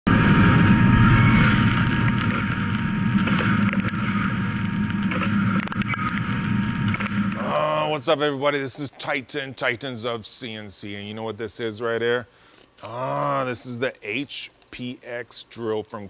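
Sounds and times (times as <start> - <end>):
machine drilling steel: 0.2 - 7.6
man speaking: 7.4 - 16.0.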